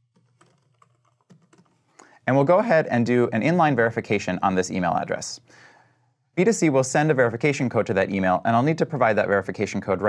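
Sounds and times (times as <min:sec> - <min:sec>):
keyboard typing: 0:00.0 - 0:01.9.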